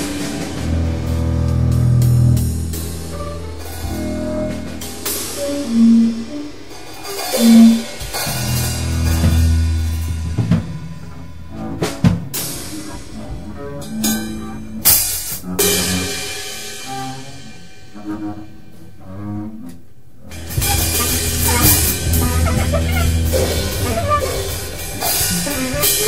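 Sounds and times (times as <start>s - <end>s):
upright bass notes: 0.0s - 6.2s, 7.5s - 12.4s, 20.3s - 26.0s
bass drum and snare hits: 20.4s - 26.0s.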